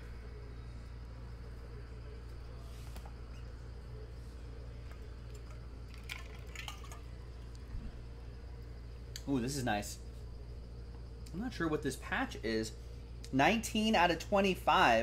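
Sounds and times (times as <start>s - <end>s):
low room hum: 0.0s - 15.0s.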